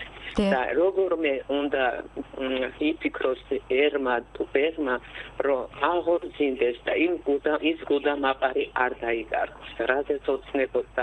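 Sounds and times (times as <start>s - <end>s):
person talking: 0.3s - 0.7s.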